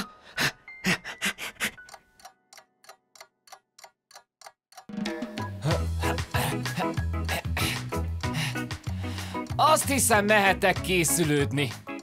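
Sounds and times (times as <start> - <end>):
clock-like ticking: 0.9 - 12.0.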